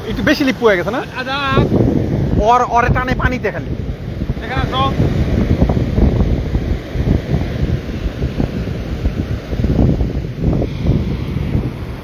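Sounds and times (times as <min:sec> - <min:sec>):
surf breaking: 0:00.0 - 0:12.0
wind buffeting microphone: 0:00.0 - 0:12.0.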